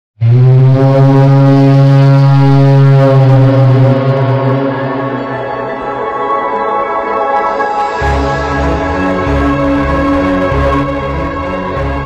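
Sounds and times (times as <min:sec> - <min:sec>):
low horn-like roar: 0:00.2 - 0:06.0, 0:08.0 - 0:12.0.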